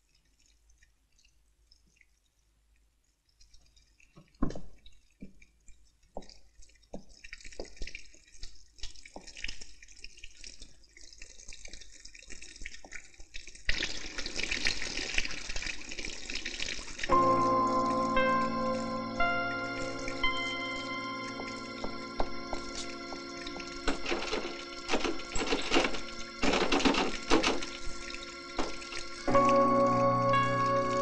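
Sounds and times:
water dripping and running: 0:00.0 - 0:31.0
music with sustained tones: 0:17.1 - 0:31.0.

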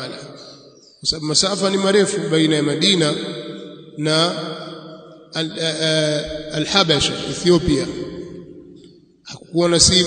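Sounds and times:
man speaking in sing-song voice: 0:00.0 - 0:00.4, 0:01.0 - 0:03.2, 0:04.0 - 0:04.5, 0:05.4 - 0:08.0, 0:09.3 - 0:10.0.

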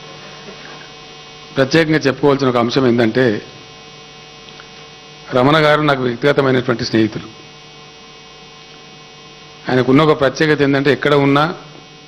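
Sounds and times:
electrical mains hum: 0:00.0 - 0:12.0
man speaking: 0:01.6 - 0:03.6, 0:05.3 - 0:07.4, 0:09.7 - 0:11.7.

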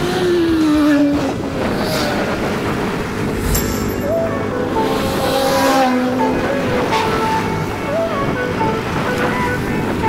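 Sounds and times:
wind and road noise: 0:00.0 - 0:10.0
background music melody: 0:03.6 - 0:10.0.

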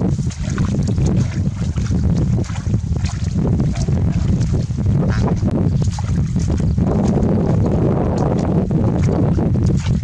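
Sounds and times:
net rustling through grass and water: 0:00.0 - 0:10.0
wind buffeting microphone: 0:00.0 - 0:10.0.

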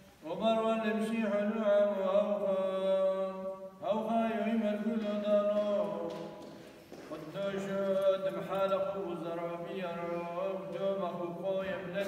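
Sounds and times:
man chanting: 0:00.2 - 0:12.0.

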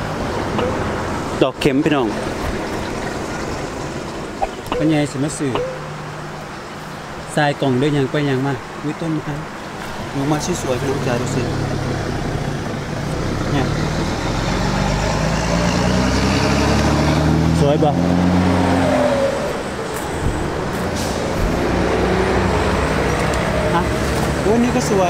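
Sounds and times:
vehicle engine droning past: 0:10.2 - 0:25.0.

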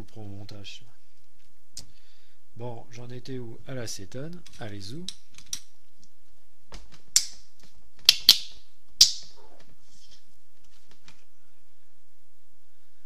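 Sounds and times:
faint steady background: 0:00.0 - 0:13.0
sharp clicks of hard objects: 0:04.4 - 0:05.7, 0:06.7 - 0:07.4.

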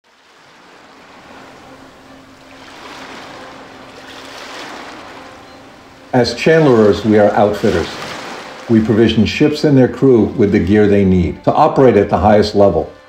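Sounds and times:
sea waves: 0:00.0 - 0:13.0
wind: 0:00.0 - 0:13.0.

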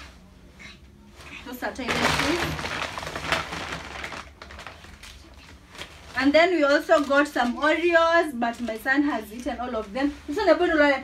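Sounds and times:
paper bag rustling and crackling: 0:01.5 - 0:11.0.

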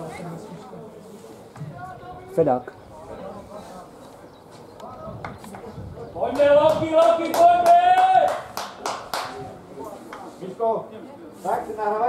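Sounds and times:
spectators clapping in rhythm: 0:06.3 - 0:09.4
long held shout: 0:06.4 - 0:08.5.

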